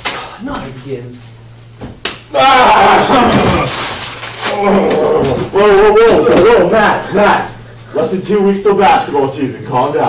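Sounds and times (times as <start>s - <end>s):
sharp slaps: 1.8s - 2.3s
person yelling loudly: 2.3s - 3.4s.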